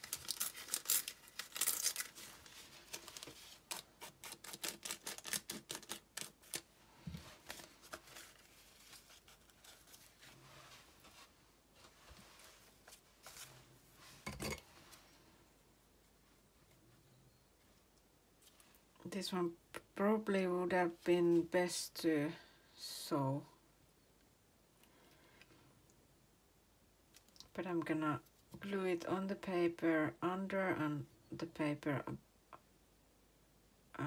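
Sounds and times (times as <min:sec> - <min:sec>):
paper tearing: 0:00.0 - 0:06.7
paper rustling: 0:00.0 - 0:14.2.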